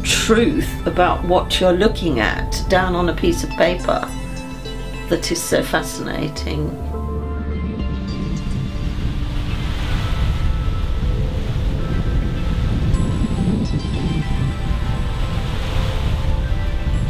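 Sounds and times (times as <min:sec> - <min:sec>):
soft music of held tones: 0:00.0 - 0:17.0
waves washing in: 0:00.0 - 0:17.0.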